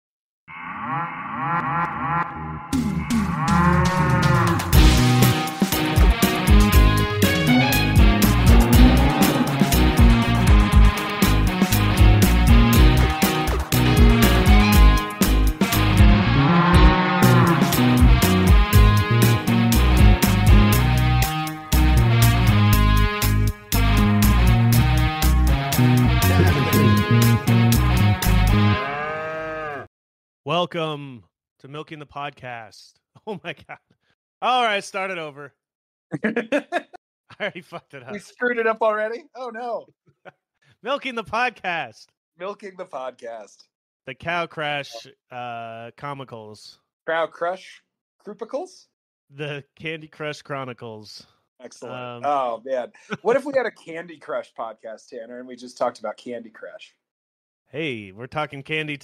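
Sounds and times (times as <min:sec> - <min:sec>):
cow mooing: 0:00.5 - 0:04.8, 0:08.4 - 0:10.3, 0:16.2 - 0:18.2, 0:26.2 - 0:27.4, 0:28.6 - 0:29.9
intro music with drums: 0:02.8 - 0:28.7.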